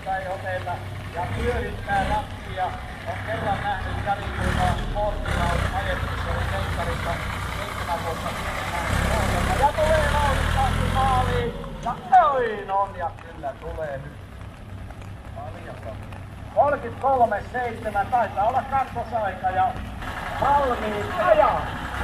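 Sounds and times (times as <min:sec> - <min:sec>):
tractor engine running: 0:00.0 - 0:22.0
voices: 0:00.0 - 0:22.0.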